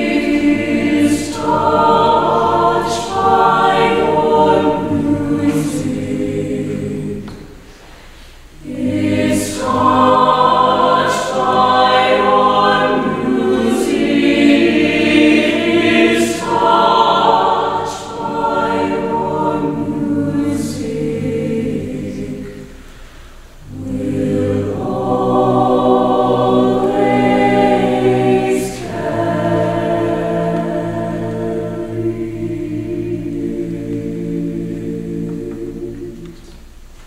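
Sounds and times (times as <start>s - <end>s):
chamber choir singing chords: 0.0s - 36.9s.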